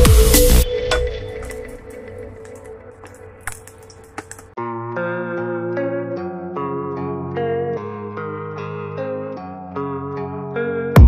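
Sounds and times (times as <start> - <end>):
guitar music: 0.0 - 11.0.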